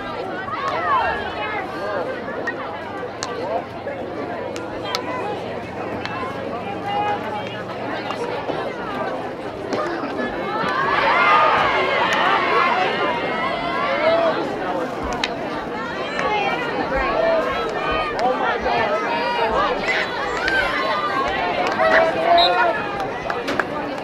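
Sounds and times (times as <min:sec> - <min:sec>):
crowd shouting and calling out: 0:00.0 - 0:24.0.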